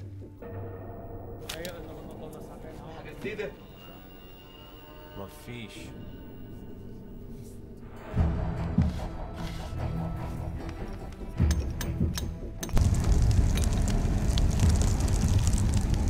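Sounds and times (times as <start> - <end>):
film score music: 0.0 - 16.0
forge fire crackling: 12.7 - 16.0.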